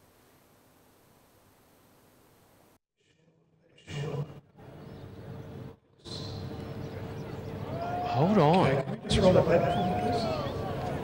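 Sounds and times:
faint cricket ground ambience: 0.0 - 11.0.

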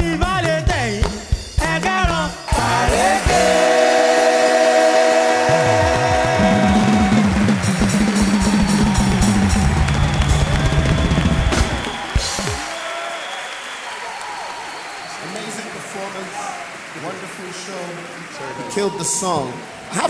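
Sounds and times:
drums with gliding pitches: 0.0 - 12.8
live band playing: 0.0 - 12.8
audience cheering and applause: 2.5 - 20.0.

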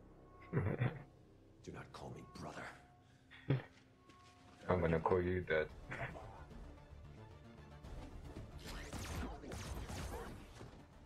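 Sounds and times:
film background music: 0.0 - 11.0.

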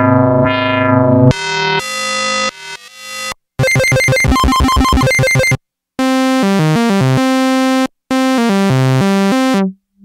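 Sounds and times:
synthesizer notes: 1.3 - 7.2.

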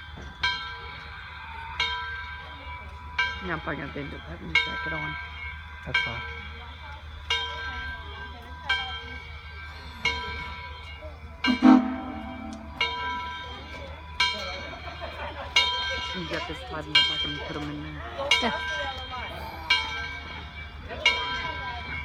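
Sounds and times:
locomotive bell ringing: 0.0 - 22.0
loud sharp sound: 11.5 - 12.9.

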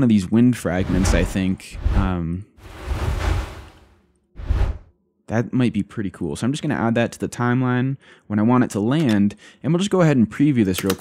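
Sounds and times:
wind whoosh: 0.8 - 4.8.

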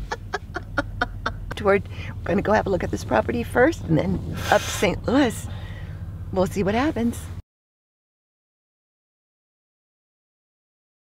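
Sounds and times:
person chuckling: 0.0 - 1.6.

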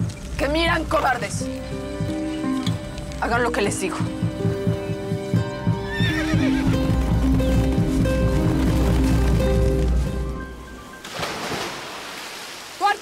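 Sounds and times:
dramatic background music: 0.0 - 11.2
hoofbeats of horses: 3.9 - 10.4
horse whinnying: 5.8 - 6.9.

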